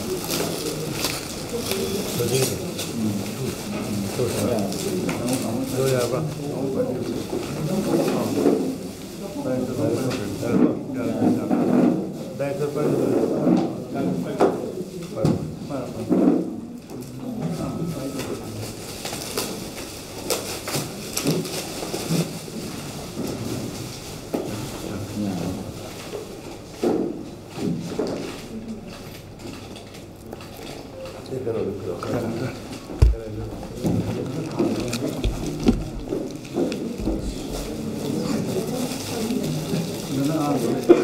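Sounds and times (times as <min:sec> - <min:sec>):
paper rustling and crinkling: 0:00.0 - 0:10.4, 0:18.4 - 0:25.3, 0:31.9 - 0:41.0
crowd murmur: 0:00.0 - 0:12.4, 0:30.8 - 0:41.0
chatter of voices: 0:00.0 - 0:19.7, 0:30.8 - 0:41.0.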